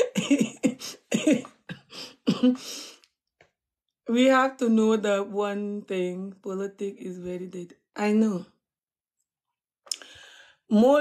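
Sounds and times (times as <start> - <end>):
woman laughing: 0.0 - 2.6.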